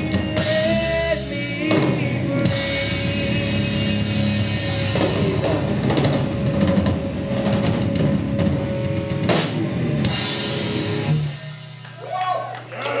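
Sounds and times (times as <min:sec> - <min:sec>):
live rock band playing: 0:00.0 - 0:12.8.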